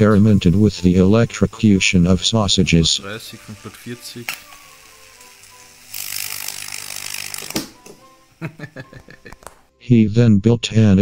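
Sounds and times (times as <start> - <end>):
sausage hissing and sizzling: 0.0 - 9.3
electrical click: 4.2 - 5.6.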